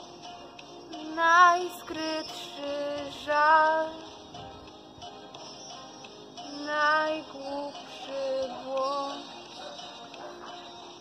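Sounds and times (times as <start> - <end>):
quiet backing track: 0.0 - 11.0
woman singing with vibrato: 1.0 - 4.1, 6.5 - 9.3.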